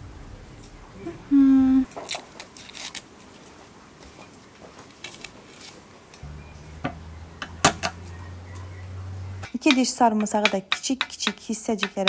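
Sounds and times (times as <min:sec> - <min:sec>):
low steady hum: 0:00.0 - 0:01.9, 0:06.2 - 0:10.2.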